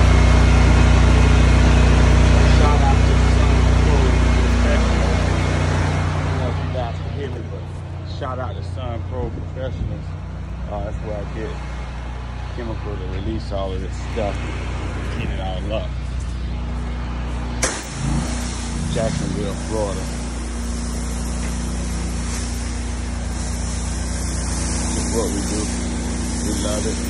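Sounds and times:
water jet hissing on concrete: 0:00.0 - 0:07.3, 0:17.6 - 0:27.0
small gasoline engine running: 0:00.0 - 0:08.2, 0:16.6 - 0:27.0.

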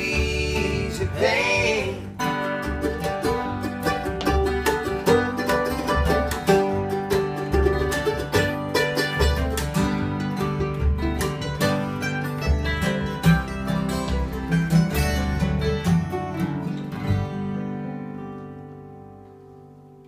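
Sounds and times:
bluegrass string band playing: 0:00.0 - 0:18.2.

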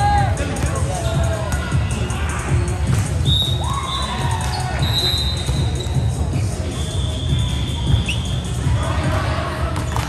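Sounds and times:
background music with bass beat: 0:00.0 - 0:09.5.

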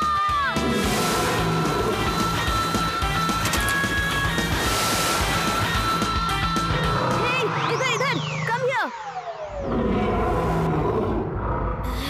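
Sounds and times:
background music: 0:00.0 - 0:11.2
cartoon monster roar: 0:09.6 - 0:12.0.

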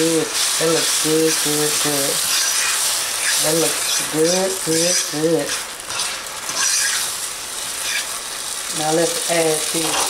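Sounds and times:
pasta sizzling in a skillet: 0:00.0 - 0:10.0
utensil scraping a pan: 0:02.0 - 0:07.2, 0:07.8 - 0:08.2.

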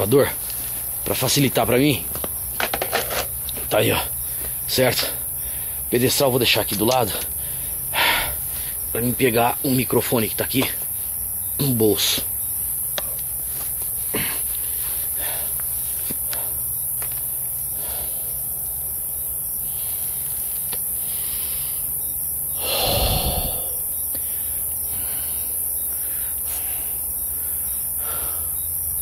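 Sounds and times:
steady high hiss: 0:00.0 - 0:29.0.

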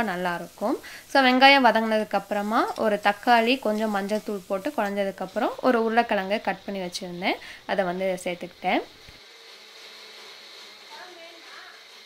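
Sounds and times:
electric mixer grinder running: 0:07.8 - 0:12.0.

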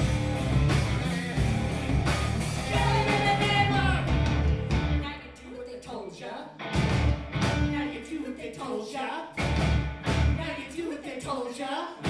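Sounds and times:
live rock band playing: 0:00.0 - 0:05.0, 0:06.6 - 0:07.8, 0:09.4 - 0:10.4.

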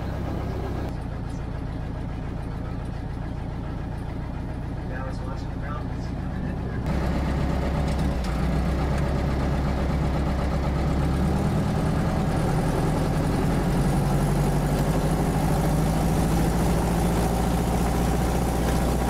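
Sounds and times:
propeller plane engine droning: 0:00.0 - 0:19.0.

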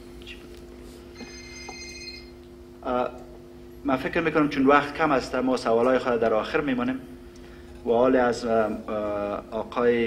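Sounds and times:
steady low hum: 0:00.0 - 0:10.0
high electronic ringing tone: 0:01.1 - 0:02.4.

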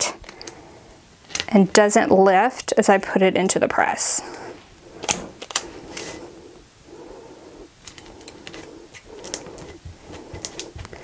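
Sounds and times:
soft breathing: 0:00.0 - 0:01.2, 0:03.8 - 0:11.0.

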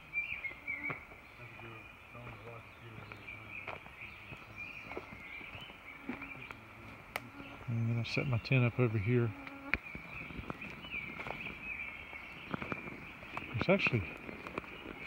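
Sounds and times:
insects chirring: 0:00.2 - 0:15.0
footsteps on leaf litter: 0:00.5 - 0:07.8, 0:09.8 - 0:15.0.

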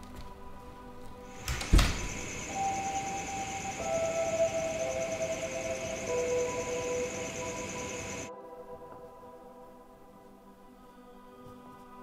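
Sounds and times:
eerie film score music: 0:00.0 - 0:12.0.

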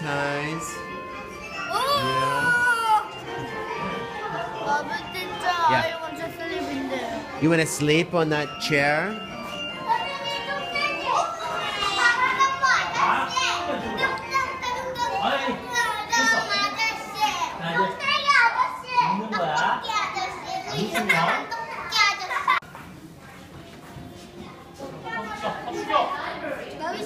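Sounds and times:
children talking and calling out: 0:00.0 - 0:27.0.

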